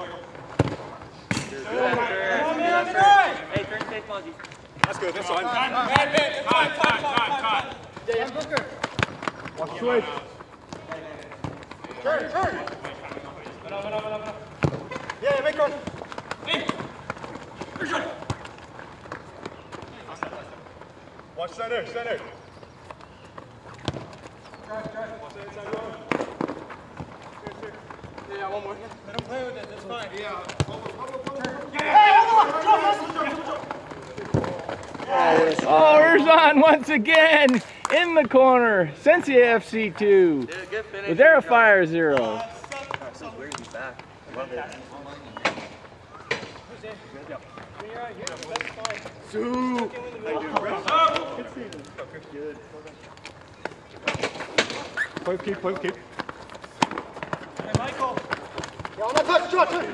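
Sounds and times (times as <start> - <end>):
ball kicked against boards: 0.5 - 2.1, 14.6 - 20.4, 23.8 - 25.0, 53.6 - 59.3
players shouting: 1.5 - 18.5, 27.4 - 43.3, 57.6 - 59.9
running footsteps: 3.0 - 40.6, 47.3 - 59.9.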